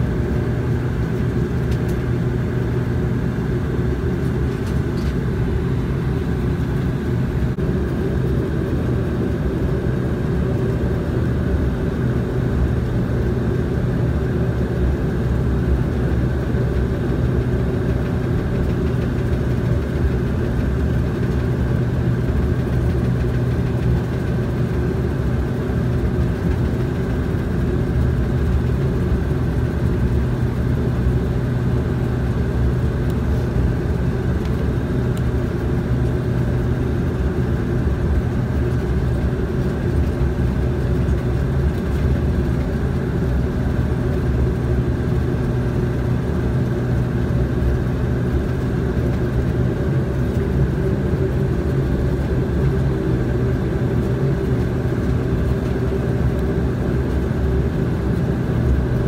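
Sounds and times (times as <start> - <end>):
turboprop engines droning: 0.0 - 59.0.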